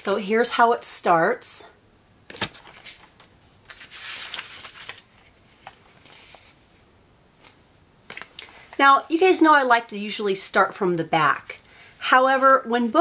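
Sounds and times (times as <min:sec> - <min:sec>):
paper pages rustling: 0:02.3 - 0:06.6.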